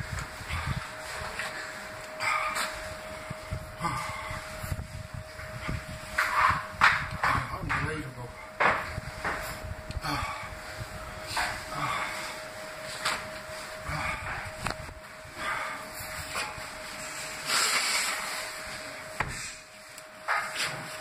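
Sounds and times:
man breathing hard: 0:00.3 - 0:06.1, 0:09.9 - 0:12.6, 0:13.5 - 0:17.9.

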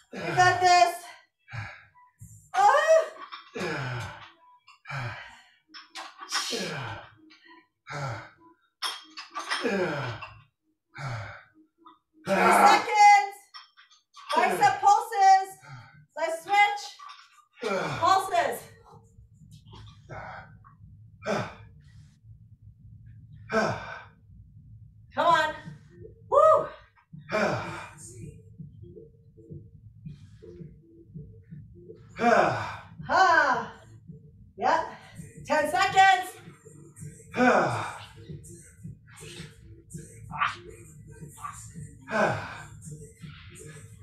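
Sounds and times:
person breathing hard: 0:27.3 - 0:28.0
person sighing with exertion: 0:32.2 - 0:32.8.

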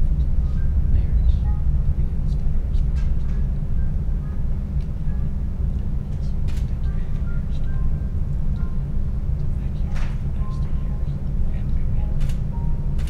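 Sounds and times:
distant indistinct speech: 0:00.0 - 0:03.7, 0:05.6 - 0:12.7
steady low rumble: 0:00.0 - 0:13.0.

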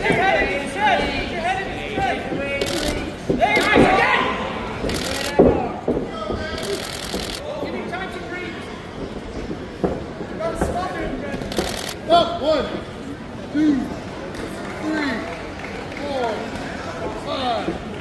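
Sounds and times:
footwork on ring canvas: 0:00.0 - 0:12.8.

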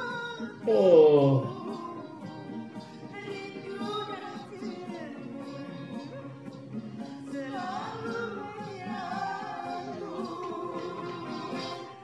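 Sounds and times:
man's drawn-out exclamation: 0:00.7 - 0:01.5.

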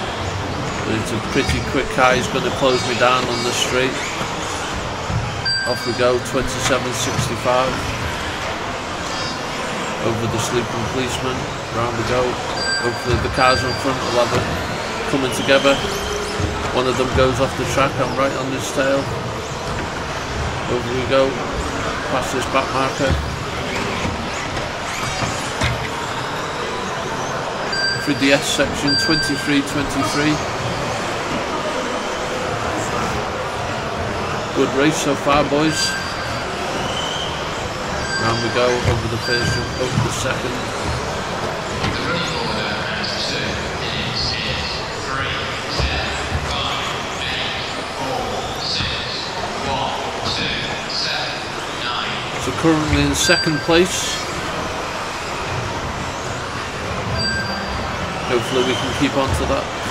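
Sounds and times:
short electronic beep: 0:05.4 - 0:06.2, 0:12.6 - 0:14.2, 0:27.7 - 0:29.6, 0:38.0 - 0:40.1, 0:57.2 - 0:58.9.

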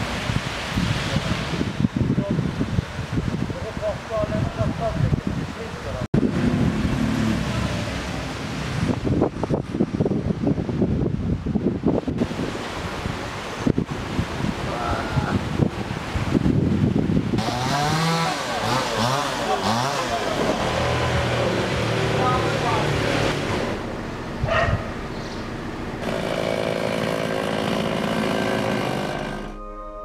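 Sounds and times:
wind buffeting microphone: 0:00.0 - 0:18.8, 0:23.6 - 0:25.2
dog barking: 0:24.4 - 0:25.0.

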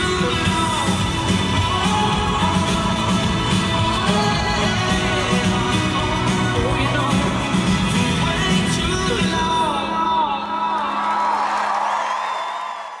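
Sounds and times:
drums: 0:00.0 - 0:10.6
country-rock band playing live: 0:00.0 - 0:11.0.

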